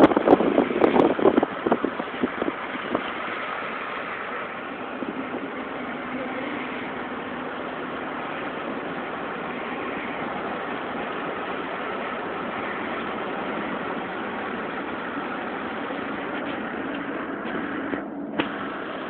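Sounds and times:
vehicle engine and road noise: 0:00.0 - 0:19.0.

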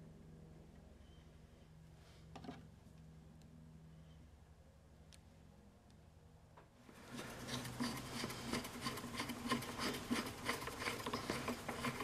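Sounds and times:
hand tool rasping wood: 0:07.1 - 0:12.0.

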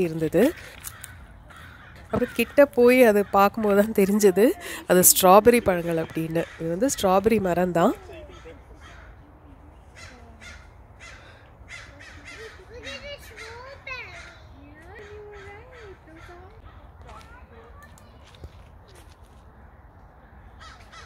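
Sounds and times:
crows cawing: 0:00.0 - 0:09.3, 0:09.9 - 0:17.0, 0:19.7 - 0:21.0.

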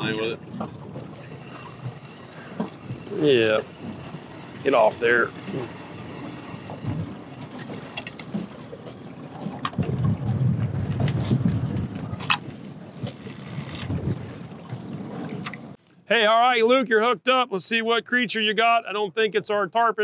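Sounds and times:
wind buffeting microphone: 0:00.0 - 0:15.8.

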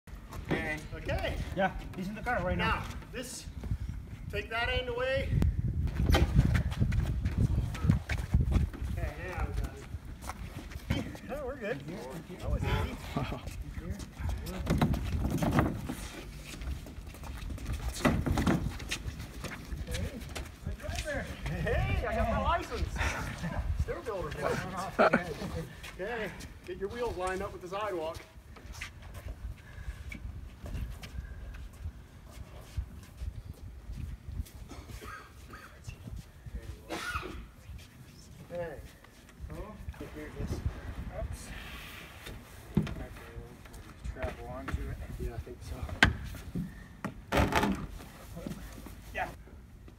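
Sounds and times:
footsteps: 0:05.8 - 0:41.0.

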